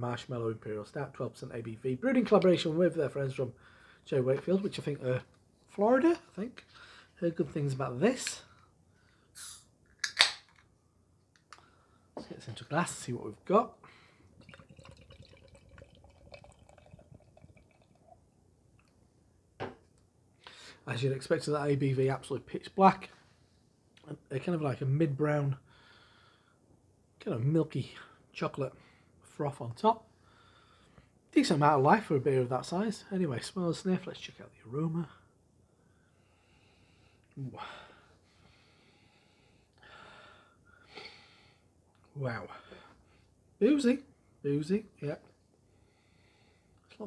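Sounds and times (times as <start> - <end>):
beer pouring into a glass: 14.2 - 18.4.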